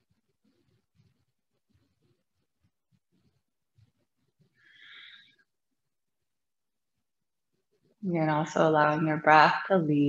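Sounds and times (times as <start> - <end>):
faint breathy hiss: 4.5 - 5.4.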